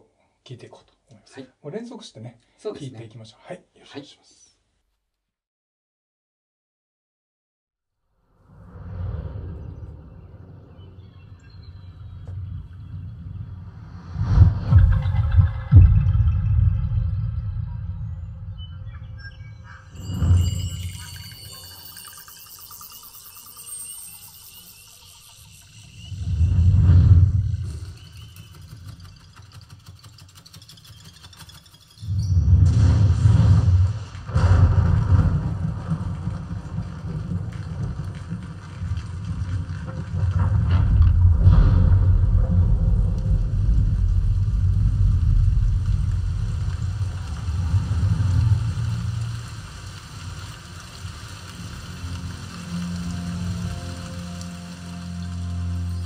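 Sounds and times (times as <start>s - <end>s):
deep bass rumble: 8.8s - 21.0s, 32.2s - 56.0s.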